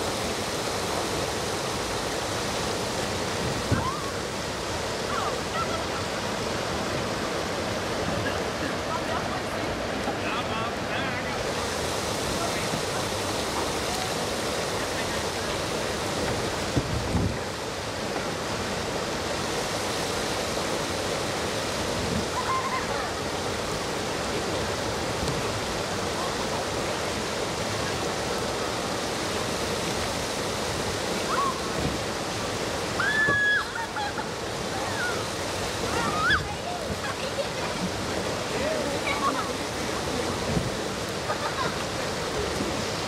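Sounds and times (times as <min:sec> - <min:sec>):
river water rushing over rocks: 0:00.0 - 0:43.0.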